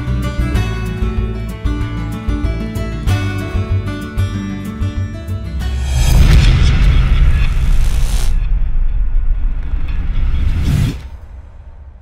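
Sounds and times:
rising whoosh: 0:05.4 - 0:12.0
deep boom and rumble: 0:05.6 - 0:12.0.

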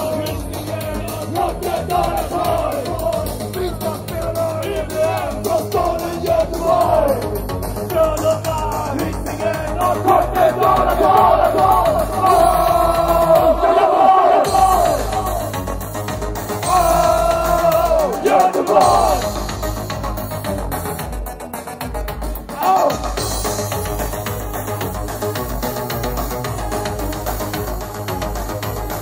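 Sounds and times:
voices shouting together: 0:00.0 - 0:03.5, 0:04.3 - 0:07.3, 0:08.8 - 0:15.6, 0:16.6 - 0:19.4
vocalist and crowd chanting: 0:00.0 - 0:15.6, 0:16.6 - 0:19.4
electronic punk music: 0:00.0 - 0:29.0.

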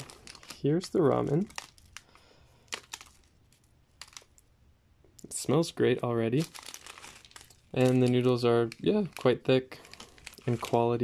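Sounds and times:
dry noodle block crackling: 0:00.0 - 0:04.4, 0:06.4 - 0:11.0.

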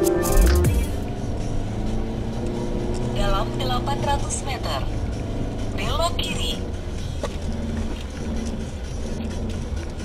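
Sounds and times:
car engine and tyres droning: 0:00.0 - 0:10.0.

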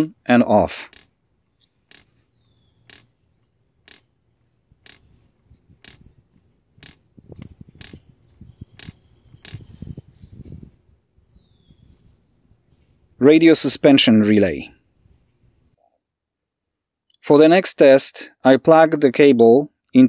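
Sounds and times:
faint irregular noises: 0:00.0 - 0:10.8
valve clicking faintly: 0:05.8 - 0:06.1.

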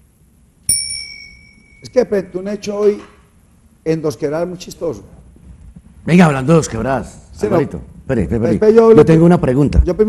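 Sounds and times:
small metal bell ringing: 0:00.7 - 0:02.0.

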